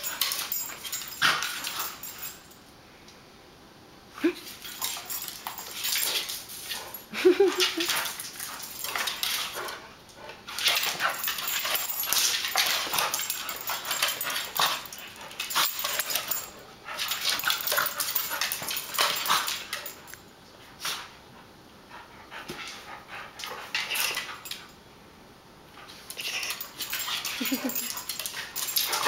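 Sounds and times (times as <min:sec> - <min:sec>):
dogs scuffling on tile floor: 0:00.0 - 0:02.6, 0:04.4 - 0:21.2, 0:22.3 - 0:24.7, 0:25.8 - 0:29.0.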